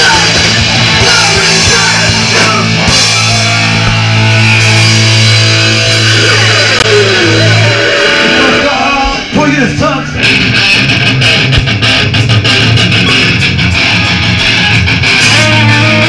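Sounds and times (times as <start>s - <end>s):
punk rock band playing: 0.0s - 16.0s
sliding guitar notes: 0.0s - 16.0s.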